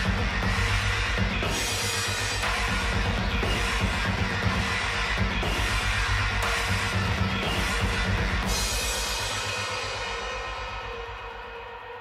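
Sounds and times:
heavy rock band playing: 0.0s - 10.3s
rapid kick drum strokes: 0.0s - 12.0s.

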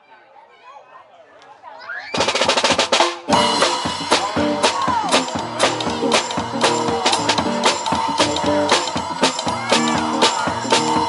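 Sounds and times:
crowd chatter: 0.0s - 11.0s
band playing: 2.2s - 11.0s
snare and bass drum hits: 2.2s - 11.0s
acoustic guitar: 3.3s - 11.0s.

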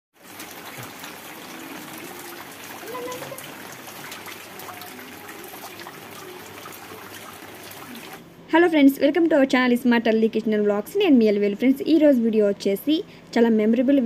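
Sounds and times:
rain falling into water: 0.1s - 8.2s
faint voices: 1.2s - 8.2s.

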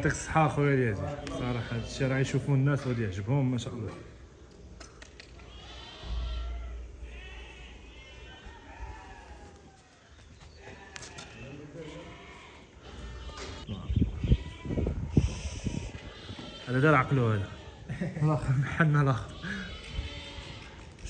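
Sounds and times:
sheep bleating: 0.9s - 3.2s, 5.3s - 9.7s, 10.6s - 21.0s.

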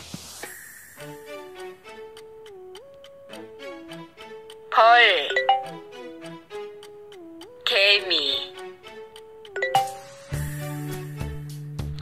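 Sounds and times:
app chime: 4.7s - 5.8s, 9.6s - 10.2s
instrumental pop backing track: 7.6s - 12.0s.

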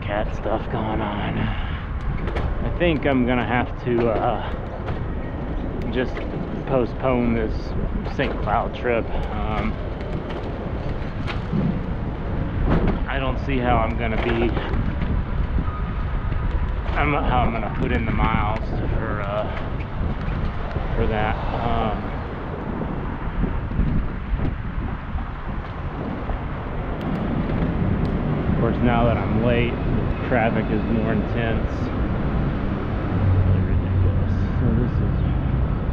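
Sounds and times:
city street traffic: 0.0s - 35.9s
road noise: 0.0s - 35.9s
wind buffeting microphone: 0.0s - 35.9s.

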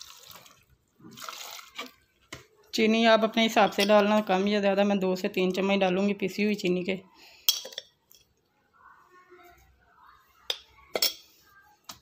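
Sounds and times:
metal spoon clinking: 3.6s - 4.3s, 7.5s - 8.3s, 10.5s - 11.3s.

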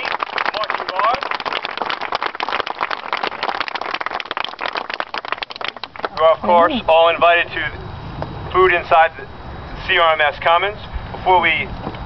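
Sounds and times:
audience clapping: 0.0s - 6.4s
voices: 5.7s - 11.8s.

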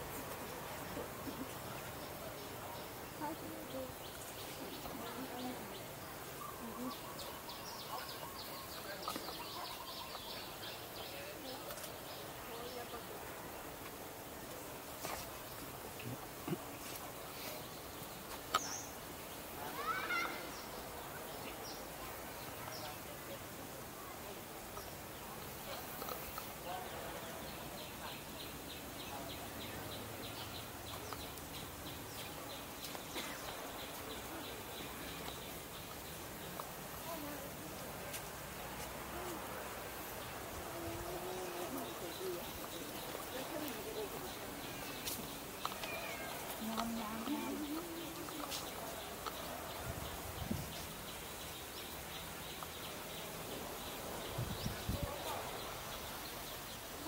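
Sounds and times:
faint background noise: 0.0s - 57.0s.

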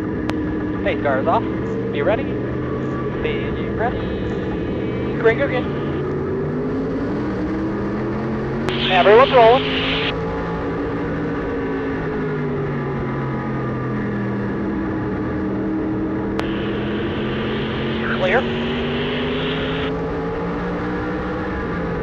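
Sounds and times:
race car engine from cockpit: 0.0s - 22.0s
crackly two-way radio voice: 3.2s - 6.0s, 8.7s - 10.1s, 16.4s - 19.9s
radio click: 8.7s - 10.1s, 16.4s - 19.9s.

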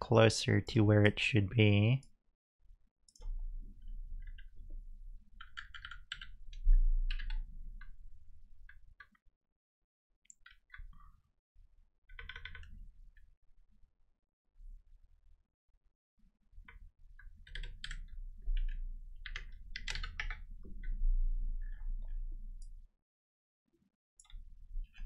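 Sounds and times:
computer keyboard clicks: 5.4s - 6.4s, 12.1s - 12.8s, 17.4s - 21.0s.

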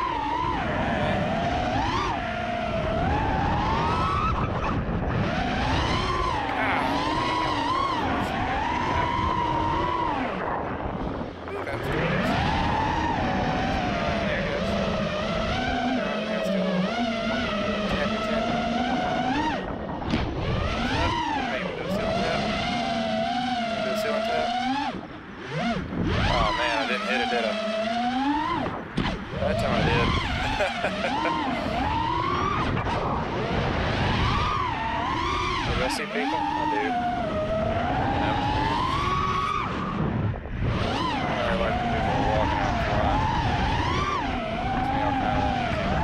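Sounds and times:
drone motors whining: 0.0s - 46.0s
low wind rumble: 0.0s - 46.0s.

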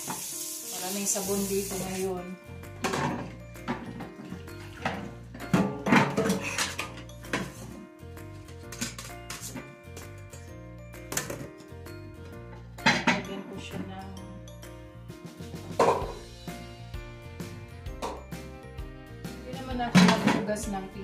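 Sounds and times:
background music: 0.0s - 21.0s
dishes clinking in a steel sink: 2.8s - 7.7s, 12.8s - 13.4s, 19.9s - 20.5s.

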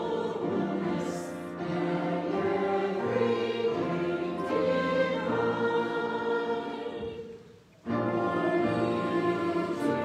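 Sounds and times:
choir singing: 0.0s - 10.0s
piano accompaniment: 0.0s - 10.0s.

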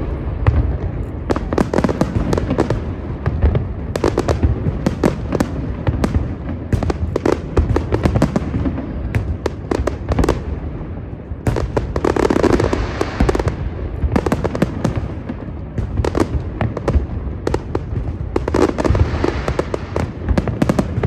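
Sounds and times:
fireworks bursting with sharp bangs: 0.0s - 21.0s.

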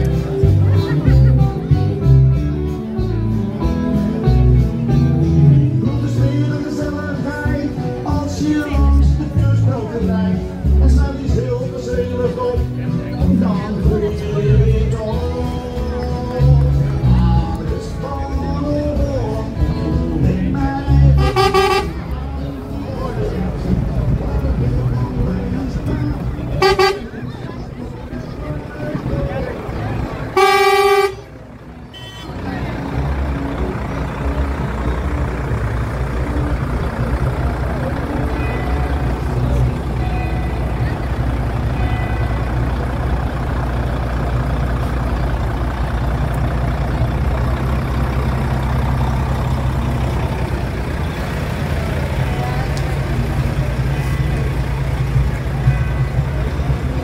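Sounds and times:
truck engine rumbling: 0.0s - 57.0s
truck horn: 21.0s - 22.4s, 26.5s - 27.5s, 29.9s - 57.0s.

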